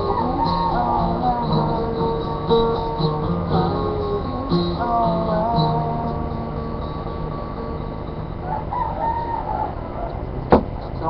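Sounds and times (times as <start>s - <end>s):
background noise: 0.0s - 11.0s
drawn-out birdlike call: 0.0s - 11.0s.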